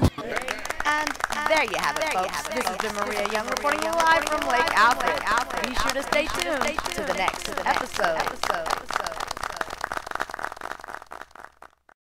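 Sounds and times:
scattered hand clapping: 0.0s - 11.9s.

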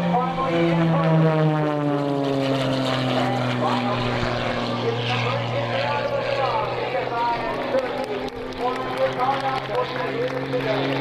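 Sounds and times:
propeller plane engine drone: 0.0s - 11.0s.

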